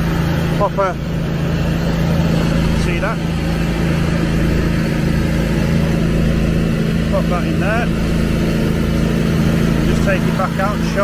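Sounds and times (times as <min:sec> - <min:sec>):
aerator engine humming: 0:00.0 - 0:11.0.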